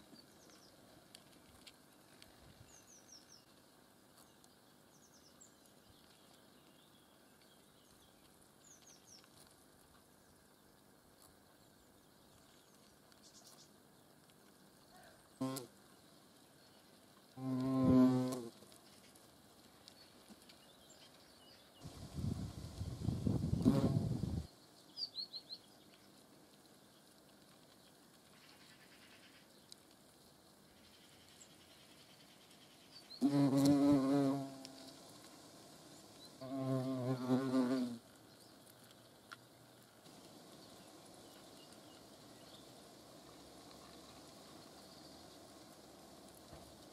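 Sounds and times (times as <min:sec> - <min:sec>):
hornets buzzing and rustling: 0:00.0 - 0:46.9
hornet wings buzzing: 0:15.4 - 0:15.7, 0:17.4 - 0:18.7, 0:21.8 - 0:24.5, 0:33.2 - 0:35.6, 0:36.4 - 0:38.0.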